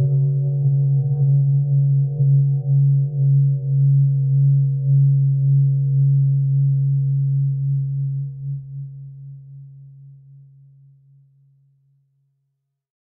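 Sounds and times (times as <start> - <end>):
ambient guitar drone: 0.0 - 10.6.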